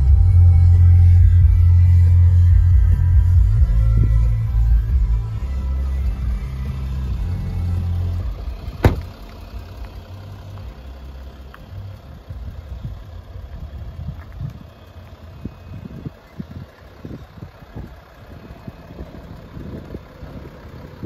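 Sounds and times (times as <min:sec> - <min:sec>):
music with heavy bass line: 0:00.0 - 0:09.7
car engine idling: 0:00.0 - 0:21.0.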